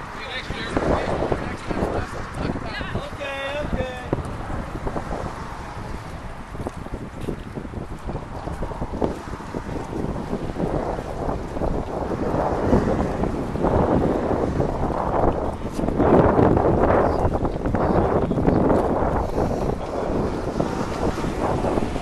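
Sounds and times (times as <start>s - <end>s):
wind rumbling on microphone: 0.0s - 22.0s
water splashing and sloshing: 4.2s - 16.0s.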